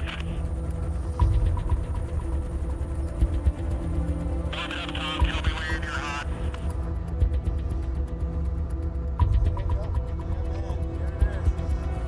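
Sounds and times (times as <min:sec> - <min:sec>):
low steady drone music: 0:00.0 - 0:12.0.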